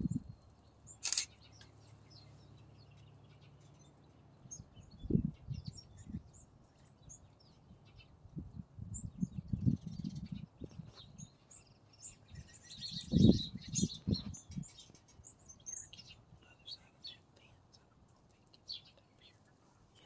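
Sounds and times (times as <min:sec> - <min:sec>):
songbirds chirping: 0:00.0 - 0:20.0.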